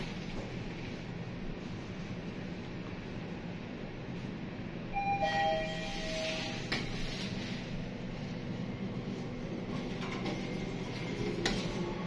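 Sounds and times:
elevator low hum: 0.0s - 12.0s
elevator arrival chime: 4.9s - 6.7s.

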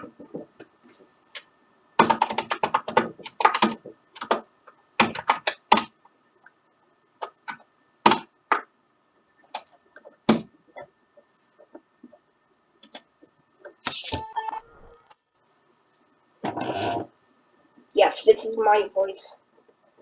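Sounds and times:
typing on computer keyboard: 2.0s - 6.0s.

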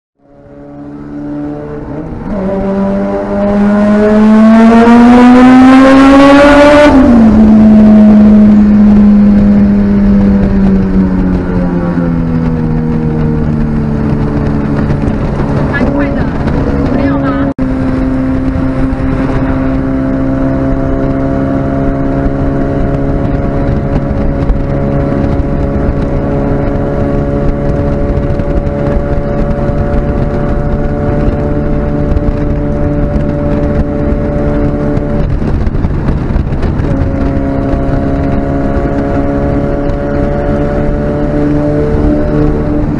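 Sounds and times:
car engine revving: 0.2s - 42.9s.

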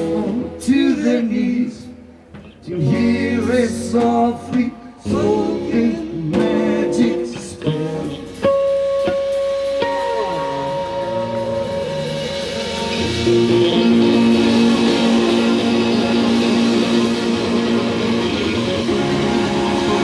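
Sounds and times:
rock band playing instrumental: 3.4s - 20.0s
long held notes: 5.1s - 20.0s.

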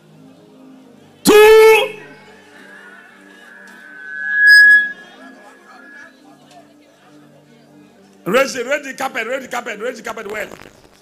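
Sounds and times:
feedback squeal: 1.3s - 6.5s.

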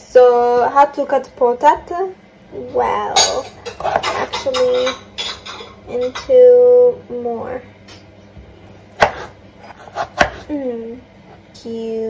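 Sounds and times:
knife chopping on wooden board: 3.6s - 4.7s, 8.4s - 10.5s.

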